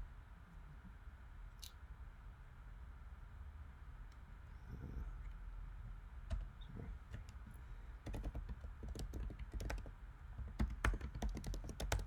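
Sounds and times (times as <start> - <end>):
typing on computer keyboard: 7.1 - 12.0.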